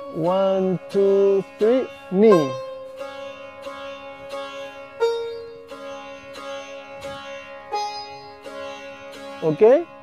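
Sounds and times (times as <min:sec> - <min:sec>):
sitar plucking: 0:00.0 - 0:10.0.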